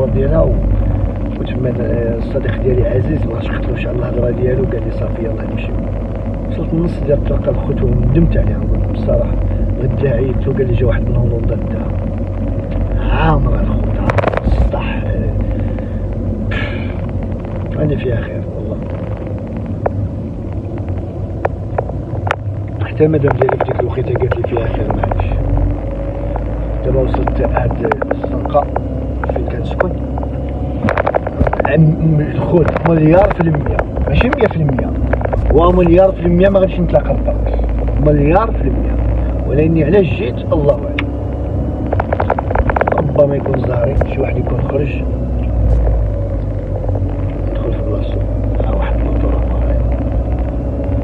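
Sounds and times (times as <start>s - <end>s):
car road and engine rumble: 0.0s - 51.0s.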